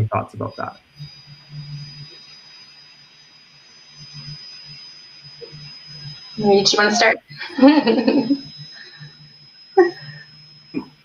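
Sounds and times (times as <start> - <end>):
high-pitched tone: 0.0 - 3.4, 5.4 - 11.0
faint low hum: 0.0 - 11.0.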